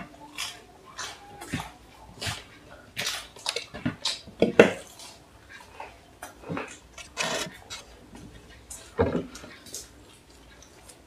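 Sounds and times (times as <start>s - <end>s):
crunchy bites and chewing: 0.2s - 5.2s.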